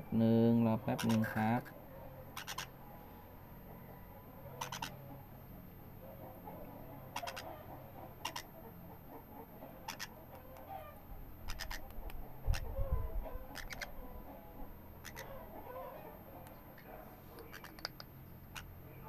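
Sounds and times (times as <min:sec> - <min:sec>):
faint soft chatter: 0:00.0 - 0:19.0
parrot chick clicking calls: 0:02.4 - 0:02.7, 0:04.6 - 0:05.0, 0:07.2 - 0:07.5, 0:08.2 - 0:08.5, 0:09.9 - 0:10.7, 0:11.5 - 0:12.7, 0:13.5 - 0:14.0, 0:15.0 - 0:15.3, 0:17.4 - 0:18.7.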